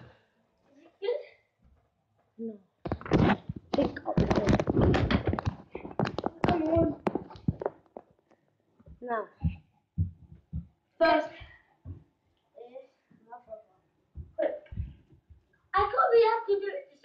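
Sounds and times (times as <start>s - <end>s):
children's voices: 6.2s - 7.1s, 15.8s - 17.0s.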